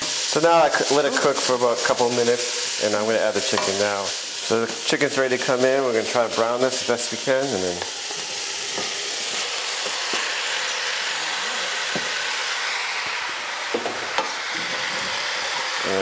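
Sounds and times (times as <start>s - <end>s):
chicken sizzling in hot oil: 0.0s - 16.0s.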